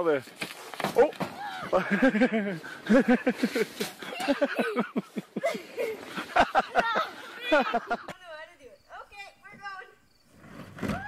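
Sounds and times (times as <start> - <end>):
people talking and laughing: 1.3 - 9.3.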